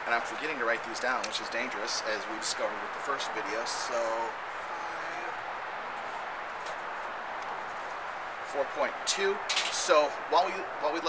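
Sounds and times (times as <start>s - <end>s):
man speaking: 0.0s - 5.4s
outdoor background hiss: 0.0s - 11.0s.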